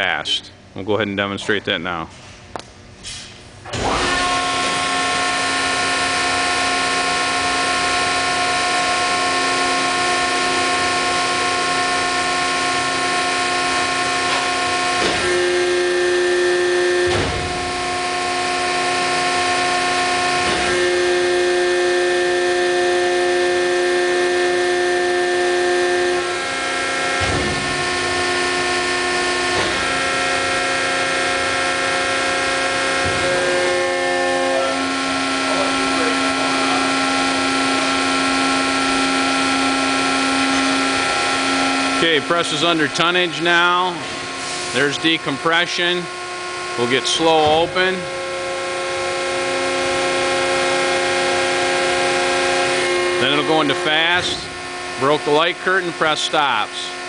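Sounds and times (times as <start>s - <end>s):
hydraulic press pump whining: 3.0s - 57.0s.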